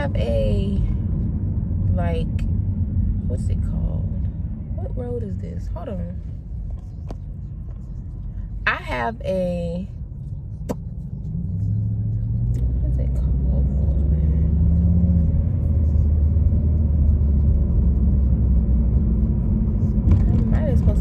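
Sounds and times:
car engine drone: 0.0s - 21.0s
road rumble inside car: 0.0s - 21.0s.

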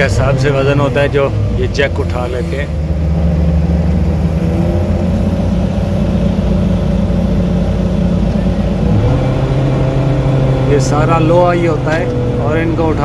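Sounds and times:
diesel engine running under load: 0.0s - 13.0s.

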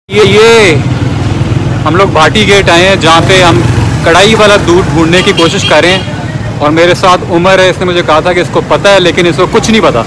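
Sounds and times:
motorcycle engine running: 0.1s - 7.7s
street traffic: 0.1s - 10.0s.

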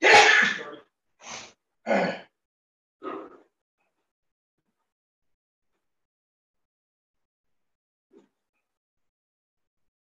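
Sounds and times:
man sneezing: 0.0s - 0.7s.

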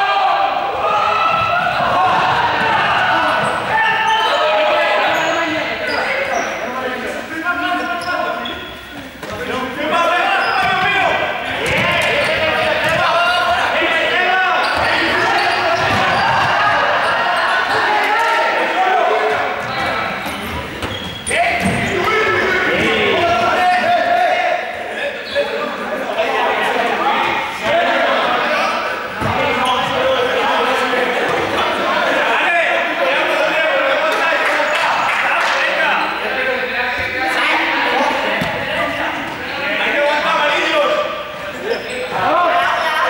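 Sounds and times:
young voices shouting: 0.0s - 8.4s, 9.6s - 20.2s
balls bouncing on floor: 11.6s - 13.6s.

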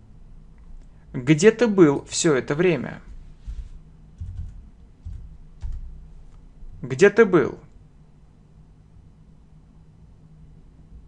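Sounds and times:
computer keyboard keystrokes: 4.2s - 6.0s.

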